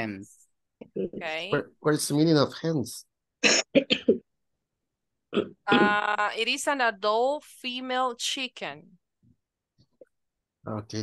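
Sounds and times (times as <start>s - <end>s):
person clearing throat: 3.4s - 4.3s, 5.3s - 6.0s.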